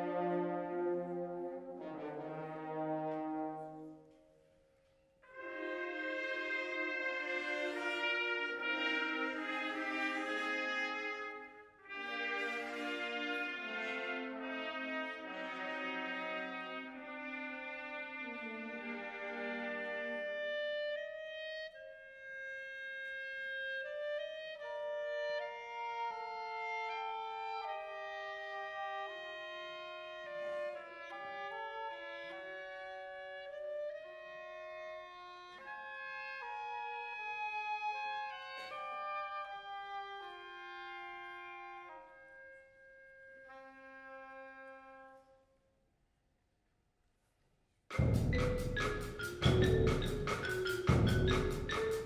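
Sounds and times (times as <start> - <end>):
wind band playing slow film music: 0.0 - 4.2, 5.3 - 45.3, 47.9 - 52.0
woodwind melody: 0.0 - 4.2, 5.3 - 45.5, 47.9 - 52.0.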